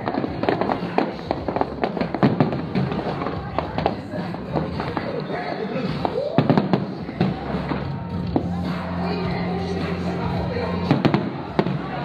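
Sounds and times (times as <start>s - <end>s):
fireworks bangs: 0.0s - 5.2s, 5.9s - 8.5s, 10.7s - 12.0s.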